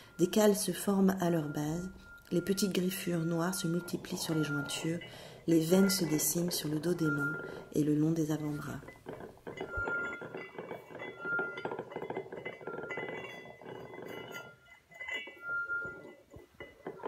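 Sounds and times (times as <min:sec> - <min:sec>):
glass ringing: 0:00.0 - 0:17.0
glasses and kitchenware clinking: 0:00.0 - 0:17.0.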